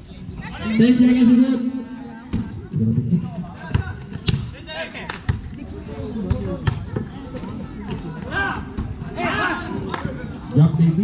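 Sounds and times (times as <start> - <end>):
basketball bouncing on concrete: 6.2 - 7.2.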